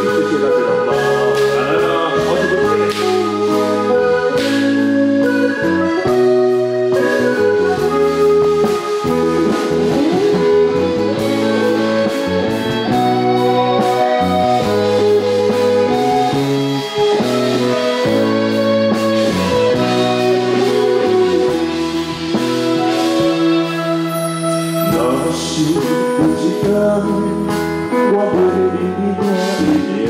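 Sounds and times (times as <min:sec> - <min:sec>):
drum kit: 0:00.0 - 0:30.0
guitar: 0:00.0 - 0:30.0
keyboards: 0:00.0 - 0:30.0
person singing: 0:00.0 - 0:30.0.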